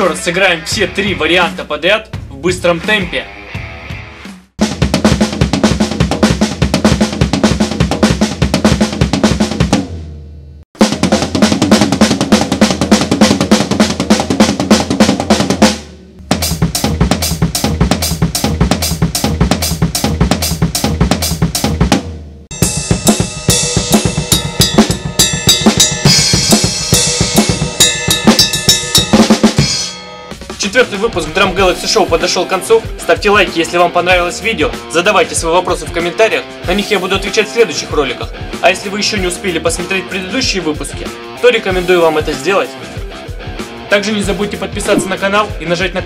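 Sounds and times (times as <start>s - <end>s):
drum kit played fast: 0.0s - 3.2s, 4.2s - 10.1s, 10.8s - 36.1s, 43.6s - 46.0s
cymbals ringing: 22.5s - 30.6s.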